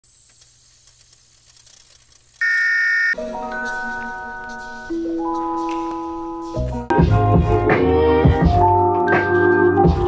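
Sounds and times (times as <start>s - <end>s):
faint crackles: 0.0s - 2.7s
television static hiss: 0.1s - 2.6s.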